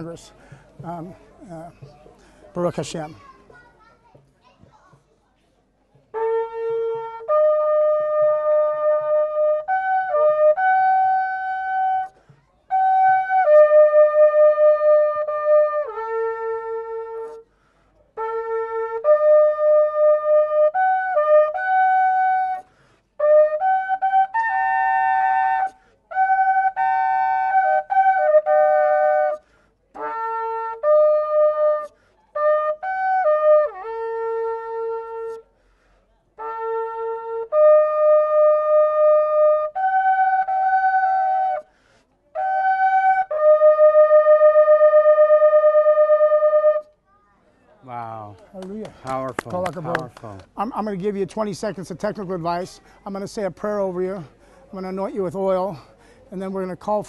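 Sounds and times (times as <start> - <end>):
shofar playing a melody: 6.1 - 17.5, 18.1 - 35.5, 36.4 - 47.0.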